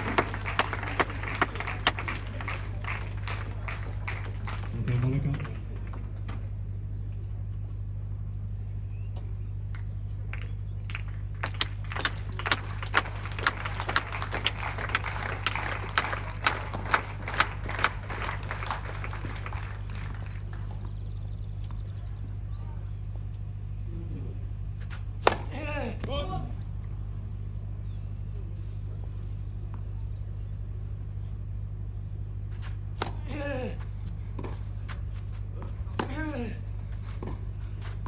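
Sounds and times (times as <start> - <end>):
close hand claps: 0.0 - 6.0, 9.7 - 21.0
crowd applause: 0.0 - 6.0, 10.3 - 20.9.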